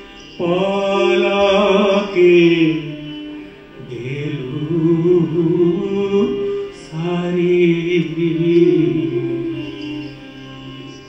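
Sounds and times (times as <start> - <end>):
person singing long note: 0.4 - 11.0.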